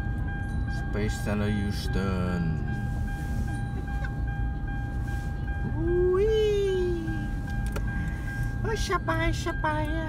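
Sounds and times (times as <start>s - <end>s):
car engine rumble: 0.0s - 10.0s
road noise: 0.0s - 10.0s
thin steady tone: 0.0s - 10.0s.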